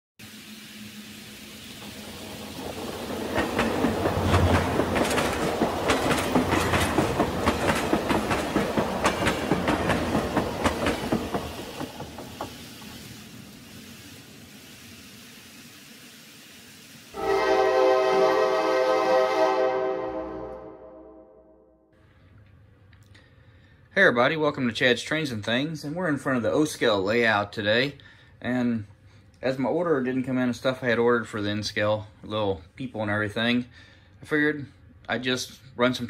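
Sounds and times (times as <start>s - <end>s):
model train wheels clicking: 1.6s - 17.1s
train whistle tone: 17.2s - 21.8s.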